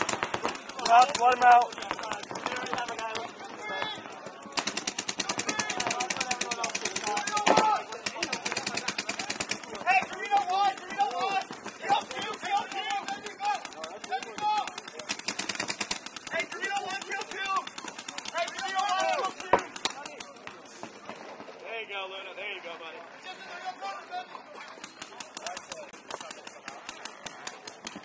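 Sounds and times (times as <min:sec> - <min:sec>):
paintball markers firing rapidly: 0:00.0 - 0:20.5, 0:24.8 - 0:28.0
players shouting: 0:00.0 - 0:20.6.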